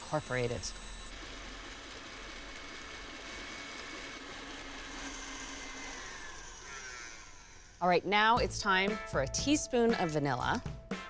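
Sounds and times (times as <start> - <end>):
stand mixer motor whine: 0.0 - 7.8.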